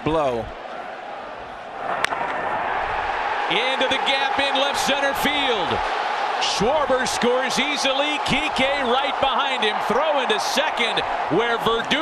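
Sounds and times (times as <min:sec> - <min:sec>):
crowd roaring: 0:00.6 - 0:12.0
wooden bat hitting ball: 0:02.0 - 0:02.4.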